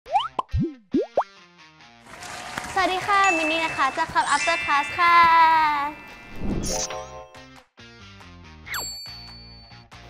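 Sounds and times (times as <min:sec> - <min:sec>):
ringing musical tones: 0:03.0 - 0:07.4.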